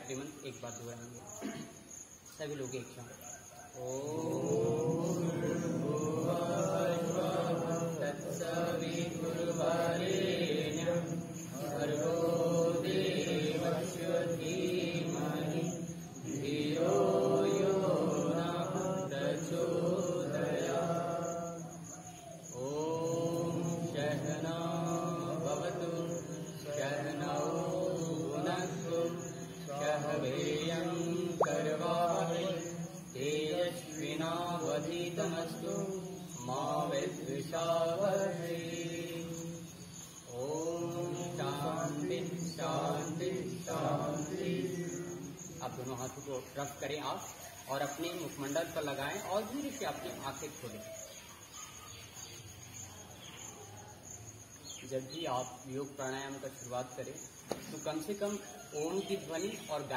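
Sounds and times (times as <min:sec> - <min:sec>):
group chanting: 0:03.7 - 0:45.9.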